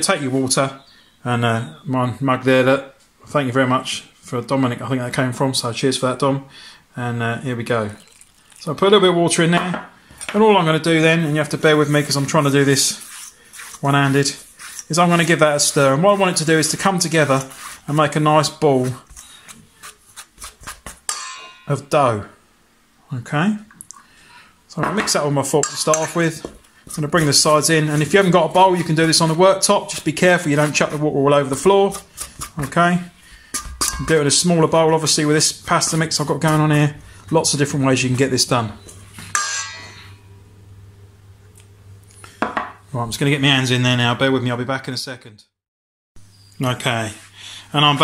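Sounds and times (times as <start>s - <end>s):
flour and water being mixed: 7.6s - 9.5s, 10.3s - 21.2s, 24.7s - 38.8s
fork scraping metal bowl: 11.7s - 21.7s, 25.6s - 32.8s, 33.5s - 37.6s
steel bowl knocked ringing: 21.1s - 21.7s.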